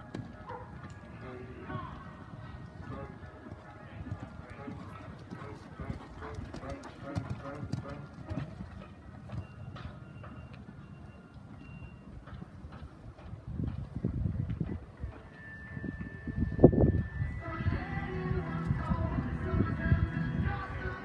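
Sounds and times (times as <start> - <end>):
horse hoofbeats on sand: 0.0 - 16.3
indistinct voices: 0.9 - 8.5.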